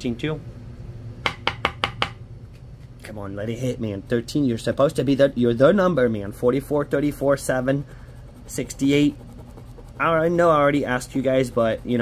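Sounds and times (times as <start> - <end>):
sharp knocks on a tabletop: 1.2 - 2.2.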